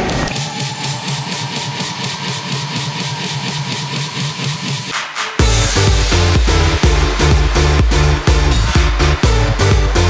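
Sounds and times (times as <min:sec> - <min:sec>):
electronic dance music: 0:00.0 - 0:10.0
rising synth sweep: 0:00.2 - 0:10.0
steady beat: 0:00.3 - 0:10.0.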